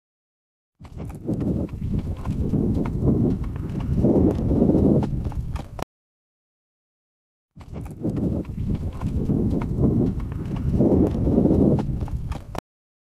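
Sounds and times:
horse hoofbeats: 0.8s - 5.8s, 7.6s - 12.6s
low rumble of wind: 0.8s - 5.8s, 7.6s - 12.6s.

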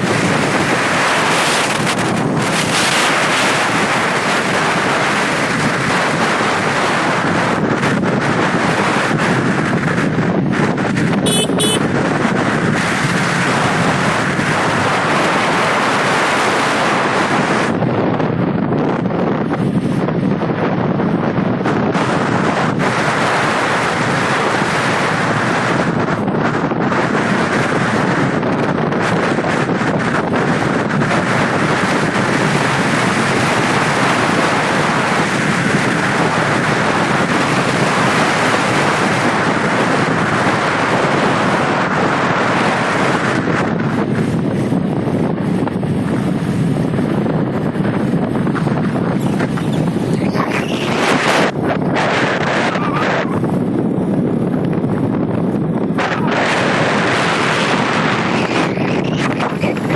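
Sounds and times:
road and vehicle noise: 0.0s - 59.9s
wind buffeting microphone: 0.0s - 59.9s.

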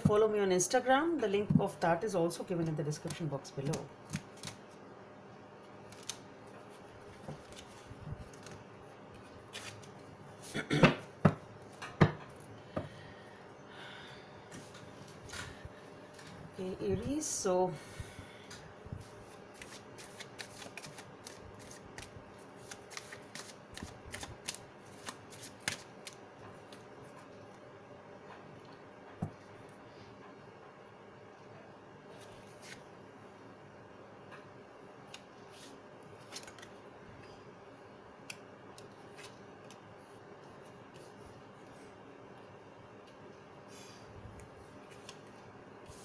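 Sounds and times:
cards being shuffled: 3.0s - 4.7s, 5.9s - 10.1s, 19.2s - 27.2s, 32.2s - 32.8s, 35.1s - 36.8s
cards snapping and sliding: 19.6s - 26.2s.

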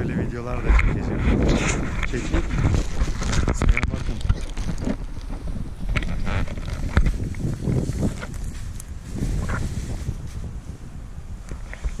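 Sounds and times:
wind buffeting microphone: 0.0s - 12.0s
footsteps on dry forest ground: 6.8s - 10.6s.

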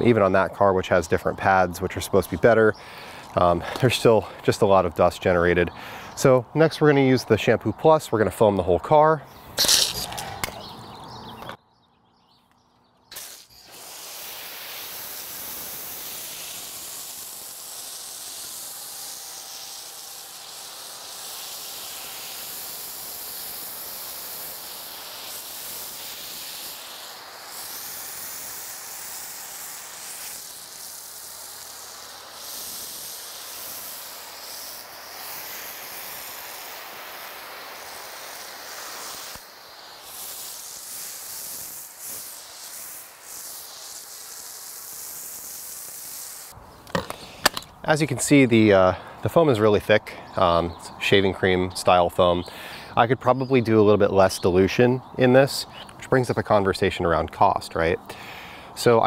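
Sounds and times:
foam cannon spraying hiss: 0.0s - 6.4s, 9.6s - 10.7s, 13.1s - 51.1s, 51.7s - 57.0s, 58.1s - 59.0s.

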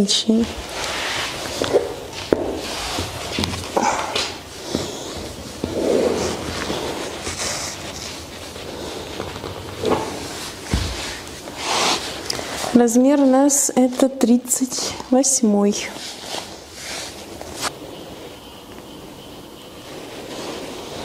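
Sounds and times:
boots rustling: 1.0s - 13.4s
boots knocking on hard floor: 9.8s - 11.2s.

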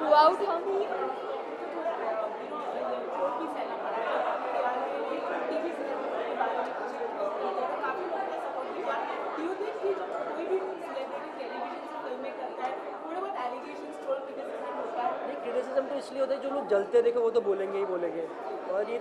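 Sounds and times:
hubbub of overlapping voices: 0.0s - 19.0s.

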